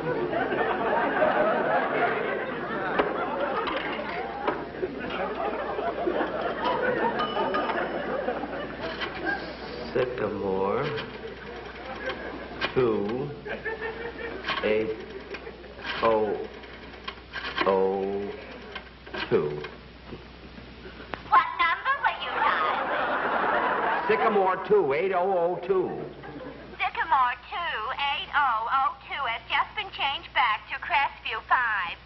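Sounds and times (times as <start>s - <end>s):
studio audience laughter: 0.0s - 9.9s, 11.2s - 12.7s, 13.4s - 16.0s, 22.2s - 24.6s, 25.8s - 26.8s.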